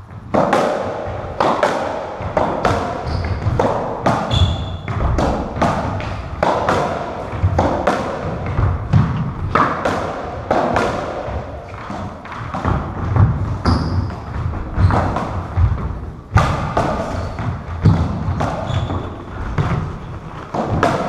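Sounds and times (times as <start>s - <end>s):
rackets hitting rubber ball: 0.3s - 21.0s.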